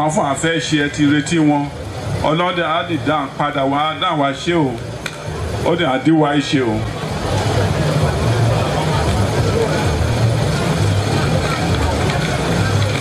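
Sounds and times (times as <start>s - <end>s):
crowd voices din: 0.0s - 13.0s.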